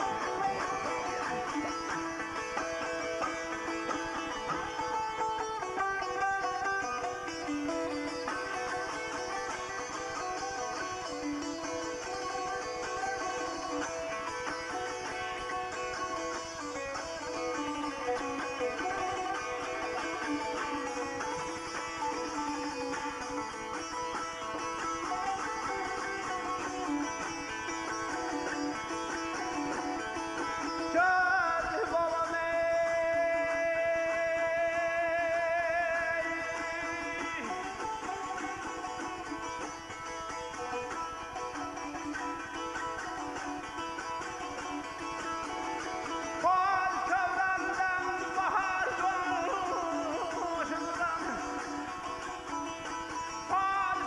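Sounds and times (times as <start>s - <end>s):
plucked lute melody: 0.0s - 54.0s
man singing: 30.8s - 37.7s, 46.4s - 51.8s, 53.5s - 54.0s.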